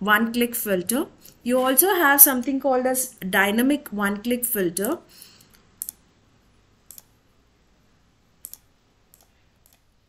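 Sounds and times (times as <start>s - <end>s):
computer mouse clicking: 5.5s - 6.0s, 6.9s - 7.2s, 8.4s - 9.9s.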